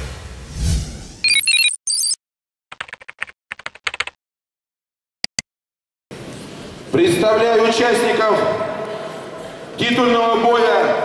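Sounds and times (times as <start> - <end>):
high electronic beeping notes: 1.2 - 2.2.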